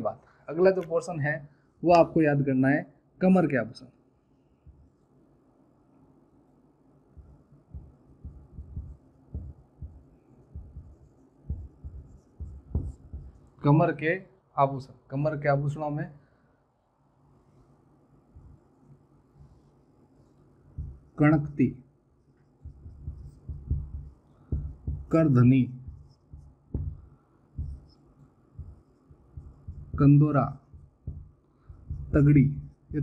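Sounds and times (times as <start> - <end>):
marker writing on whiteboard: 8.3 - 13.6, 22.3 - 33.0.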